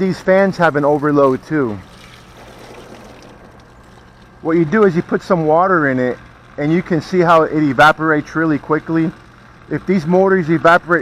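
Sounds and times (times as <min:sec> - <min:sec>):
water from hose running: 0:00.0 - 0:11.0.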